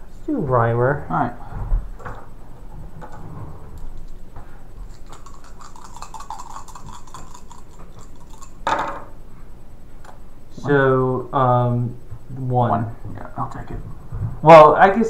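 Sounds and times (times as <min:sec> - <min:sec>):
dice rattling in hand: 0:05.0 - 0:08.6.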